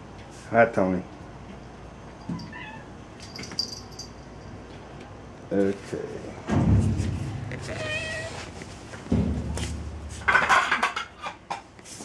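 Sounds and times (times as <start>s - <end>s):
cats meowing: 2.3s - 3.1s, 7.5s - 8.6s.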